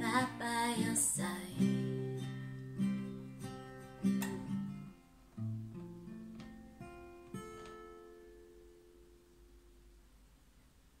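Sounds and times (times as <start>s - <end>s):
acoustic guitar playing: 0.0s - 10.1s.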